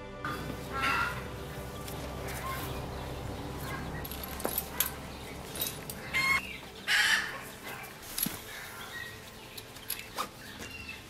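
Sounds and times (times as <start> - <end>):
chicken squawking: 0.3 - 1.5, 6.1 - 7.5.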